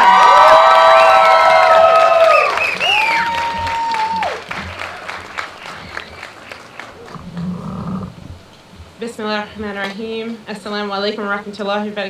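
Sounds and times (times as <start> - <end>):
long held whoops: 0.0 - 4.5
crowd applauding: 0.0 - 8.1.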